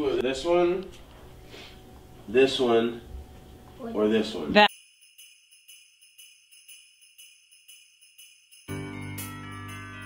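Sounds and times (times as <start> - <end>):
sleigh bells shaken: 4.6 - 10.0.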